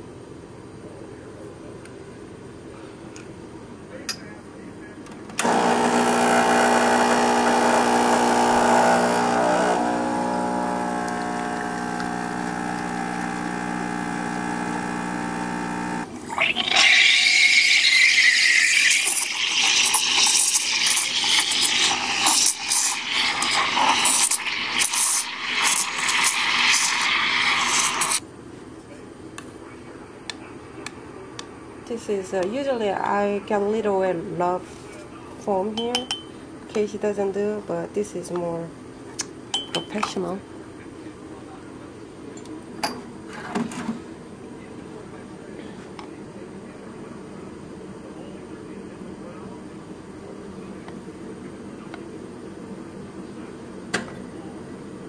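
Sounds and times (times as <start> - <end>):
espresso machine pump humming: 5.4 - 28.2
steam wand hissing and spluttering: 16.4 - 28.2.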